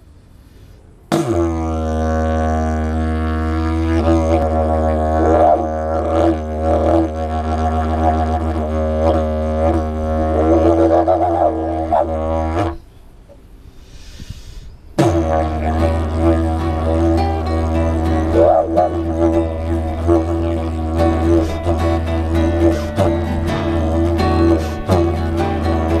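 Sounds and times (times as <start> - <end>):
didgeridoo drone: 1.1 - 12.8, 15.0 - 26.0.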